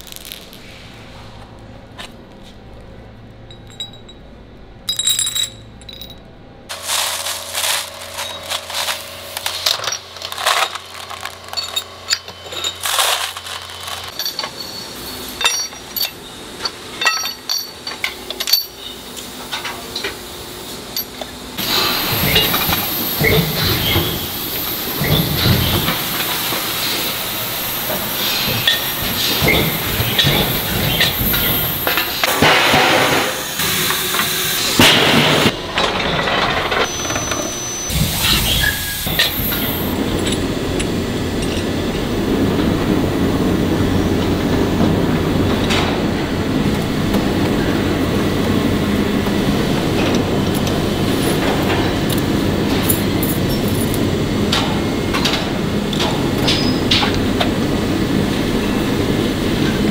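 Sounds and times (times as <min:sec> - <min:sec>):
machinery running: 0:04.9 - 0:18.6, 0:21.6 - 0:59.9
metal parts clanking: 0:04.9 - 0:20.1, 0:21.0 - 0:33.3, 0:34.8 - 0:41.7, 0:50.0 - 0:57.2.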